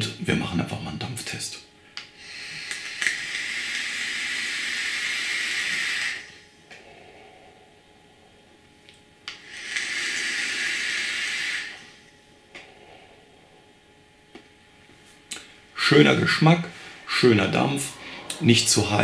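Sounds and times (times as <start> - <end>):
air hissing through e-cigarette: 2.2 - 7.6, 9.3 - 13.2
breathy exhale: 2.2 - 8.4, 9.3 - 13.7, 15.4 - 19.0.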